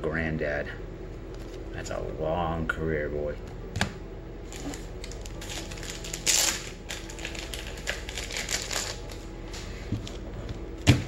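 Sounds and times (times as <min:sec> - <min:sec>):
cards rustling: 0:04.5 - 0:10.2.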